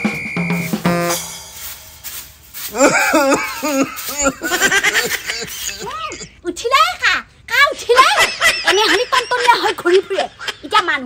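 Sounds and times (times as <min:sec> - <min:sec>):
woman laughing: 0:02.7 - 0:06.5, 0:07.9 - 0:11.0
woman speaking: 0:05.6 - 0:11.0.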